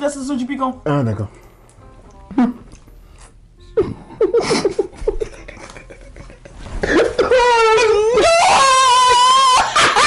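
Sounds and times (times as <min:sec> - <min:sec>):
person squealing laugh: 0:06.8 - 0:10.0.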